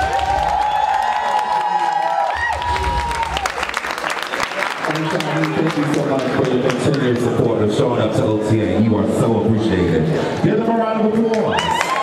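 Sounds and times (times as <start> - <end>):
crowd whooping: 0.0 - 4.6, 11.4 - 12.0
crowd clapping: 0.0 - 7.6, 11.2 - 12.0.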